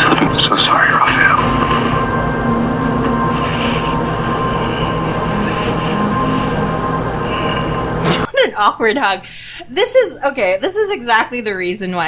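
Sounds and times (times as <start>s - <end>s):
low drone tones: 0.0s - 8.3s
steady higher tone: 0.0s - 8.9s.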